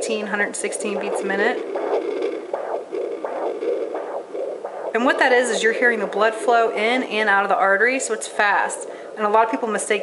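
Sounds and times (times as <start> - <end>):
doppler pulsing blood flow: 0.0 - 10.0.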